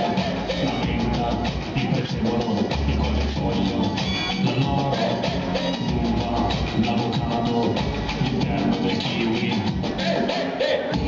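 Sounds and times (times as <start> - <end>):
bass: 0.0 - 11.0
live band playing: 0.0 - 11.0
steady drum beat: 0.0 - 11.0.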